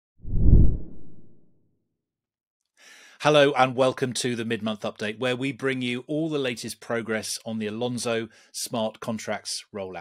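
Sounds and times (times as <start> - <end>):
low whoosh sound effect: 0.2 - 1.4.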